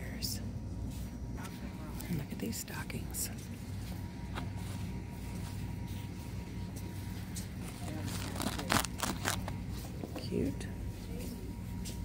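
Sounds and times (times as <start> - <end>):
shop low hum: 0.0 - 12.0.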